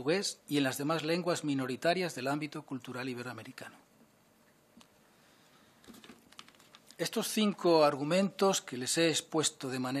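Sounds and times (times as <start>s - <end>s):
faint clicks and taps: 5.8s - 7.0s.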